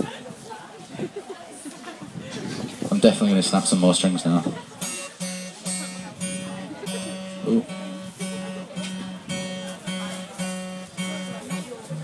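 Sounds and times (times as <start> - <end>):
acoustic guitar strumming: 3.2 - 12.0.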